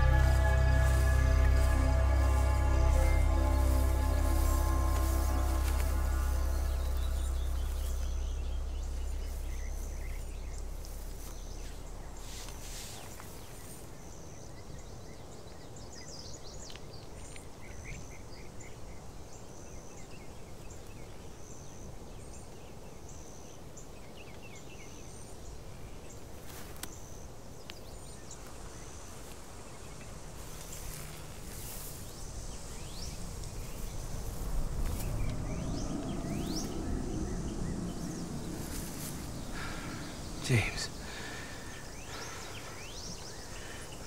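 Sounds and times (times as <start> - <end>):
low rumble: 0.0 - 13.8, 30.4 - 43.6
insect chirping: 0.0 - 14.0, 28.4 - 44.0
birds chirping: 0.0 - 18.6, 27.7 - 44.0.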